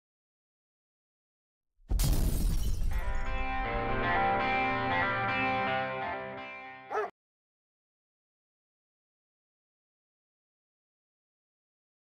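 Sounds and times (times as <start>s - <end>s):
crashing shattering sound effect: 1.9s - 3.3s.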